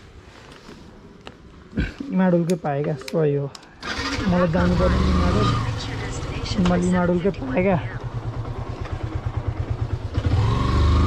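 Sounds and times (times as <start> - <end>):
motorcycle engine starting and running: 3.8 - 11.0.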